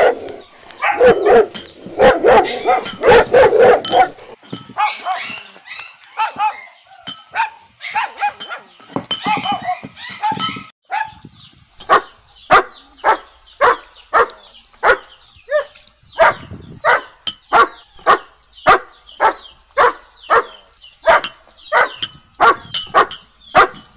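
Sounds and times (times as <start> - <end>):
dog barking: 0.0 - 6.7, 7.3 - 8.7, 9.3 - 11.2, 11.9 - 23.8.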